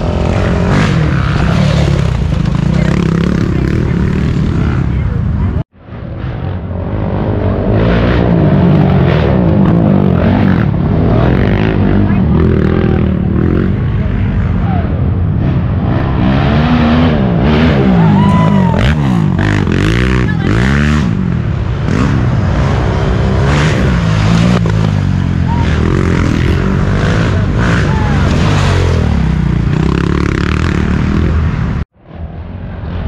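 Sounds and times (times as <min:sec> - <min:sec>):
atv engines revving: 0:00.0 - 0:31.9.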